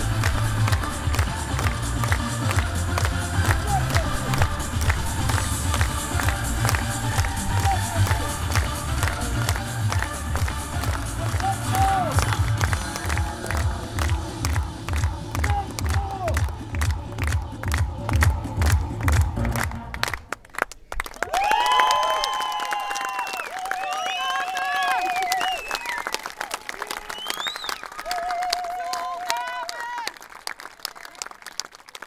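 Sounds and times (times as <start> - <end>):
music with heavy steady beat: 0.0 - 20.0.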